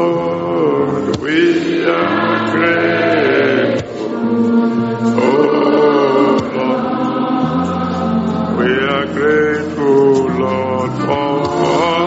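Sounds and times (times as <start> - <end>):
choir singing gospel song: 0.0 - 12.0.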